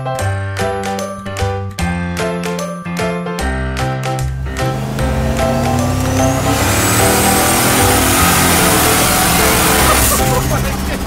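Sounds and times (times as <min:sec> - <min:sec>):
background music: 0:00.0 - 0:11.0
truck engine accelerating: 0:04.2 - 0:11.0.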